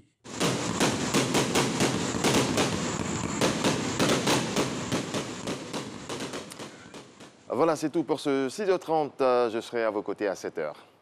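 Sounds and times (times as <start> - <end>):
fireworks bangs and crackles: 0.3 - 7.8.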